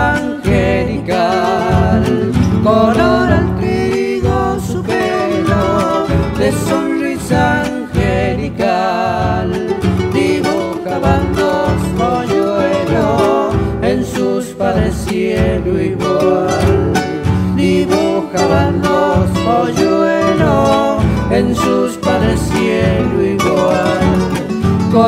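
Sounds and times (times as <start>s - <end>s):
folk guitar ensemble playing: 0.0s - 25.0s.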